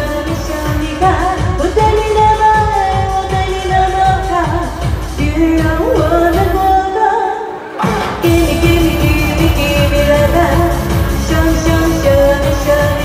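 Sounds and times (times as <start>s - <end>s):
backing track with dance beat: 0.0s - 13.0s
woman singing into microphone: 0.0s - 13.0s.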